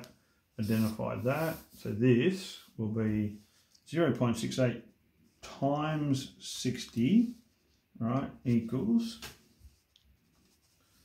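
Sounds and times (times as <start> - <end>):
spoken word: 0.6 - 4.7.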